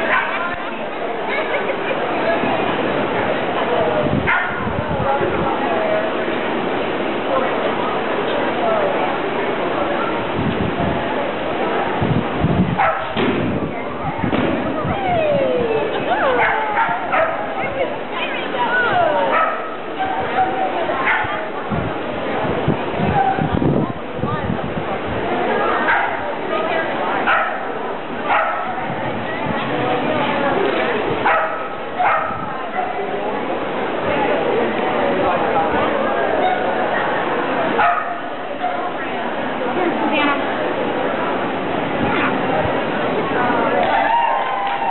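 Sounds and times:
murmur of people talking: 0:00.0 - 0:44.9
voices: 0:00.0 - 0:44.9
dog barking: 0:04.3 - 0:04.7, 0:12.8 - 0:13.2, 0:16.4 - 0:17.5, 0:19.3 - 0:19.8, 0:27.3 - 0:27.7, 0:28.3 - 0:28.8, 0:31.2 - 0:33.0, 0:37.8 - 0:38.3.

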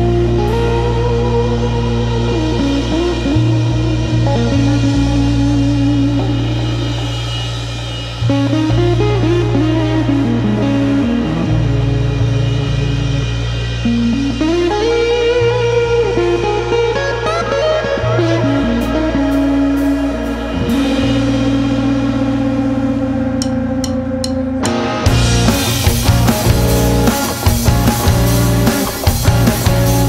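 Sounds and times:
bass guitar: 0:00.0 - 0:30.0
drums: 0:00.0 - 0:30.0
electric guitar lead line: 0:00.0 - 0:30.0.

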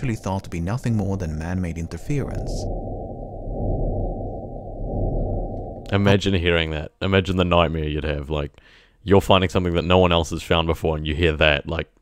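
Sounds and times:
pulsing static hiss: 0:00.0 - 0:06.2.

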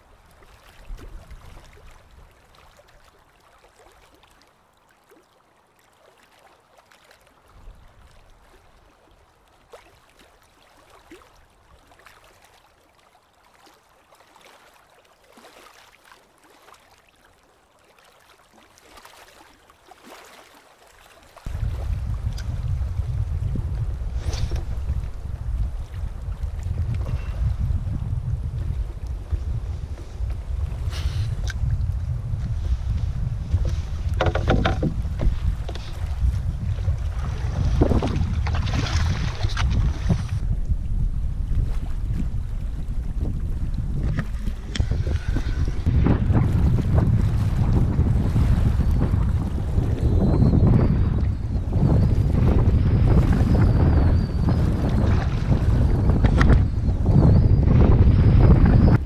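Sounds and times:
water lapping against hull: 0:00.0 - 0:59.0
wind buffeting microphone: 0:21.4 - 0:59.0.

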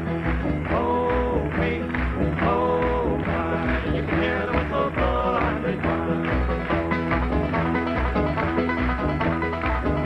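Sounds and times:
acoustic guitar: 0:00.0 - 0:10.0
banjo picking: 0:00.0 - 0:10.0
mandolin: 0:00.0 - 0:10.0
upright bass: 0:00.0 - 0:10.0.

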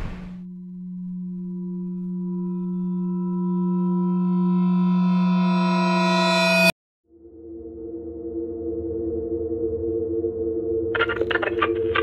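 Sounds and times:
low electronic drone tone: 0:00.4 - 0:12.0.

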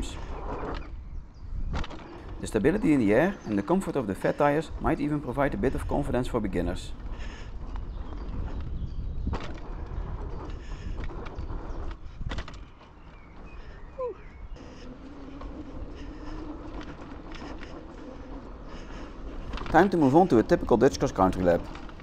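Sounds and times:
bike tyres rumbling on dirt: 0:00.0 - 0:22.0.

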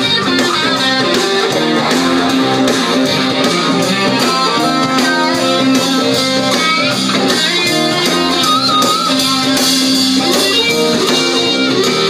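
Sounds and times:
live rock band playing: 0:00.0 - 0:12.0.

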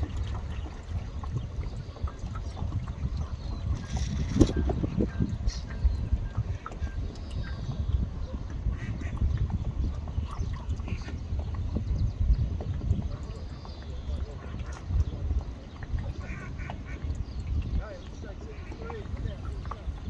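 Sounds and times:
wind buffeting microphone: 0:00.0 - 0:20.0
faint distant voices: 0:12.9 - 0:20.0.

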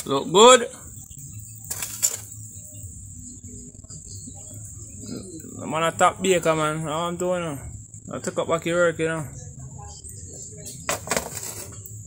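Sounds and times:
crickets chirring: 0:00.0 - 0:12.0.

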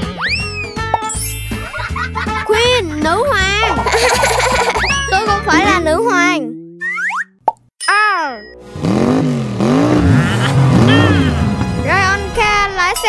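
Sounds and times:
children's music: 0:00.0 - 0:06.6, 0:10.0 - 0:13.0
bouncing tones: 0:10.0 - 0:11.8.

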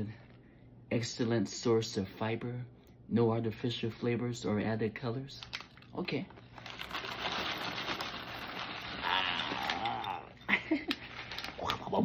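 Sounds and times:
plastic bag rustling: 0:05.6 - 0:12.0
cereal rattling into glass bowl: 0:06.6 - 0:12.0.

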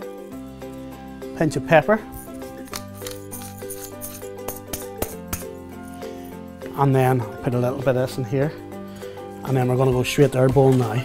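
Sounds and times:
background music with held tones: 0:00.0 - 0:11.0
pepper mill grinding: 0:02.0 - 0:06.0.

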